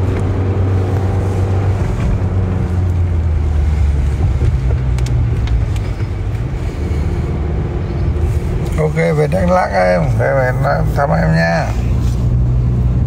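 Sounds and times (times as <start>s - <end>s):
car engine and road drone: 0.0s - 13.0s.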